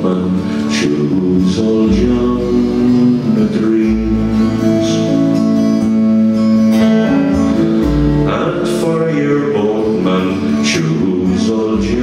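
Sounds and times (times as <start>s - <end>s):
strummed acoustic guitars: 0.0s - 12.0s.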